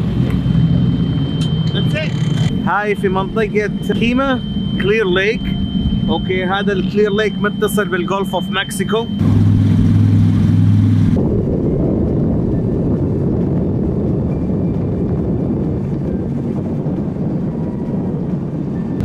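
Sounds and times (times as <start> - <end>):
powerboat engines running: 0.0 - 19.0
water and wind rushing over hull: 0.0 - 19.0.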